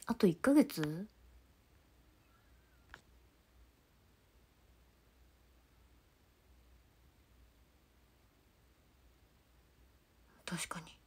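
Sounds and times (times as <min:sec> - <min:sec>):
young woman whispering: 0:10.3 - 0:11.0.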